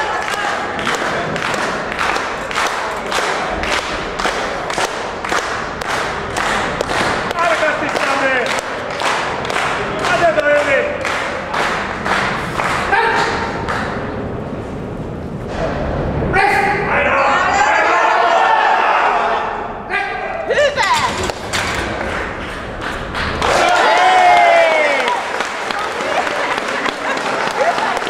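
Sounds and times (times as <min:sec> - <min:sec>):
rhythmic hand-clapping: 0:00.0 - 0:14.3, 0:21.6 - 0:28.0.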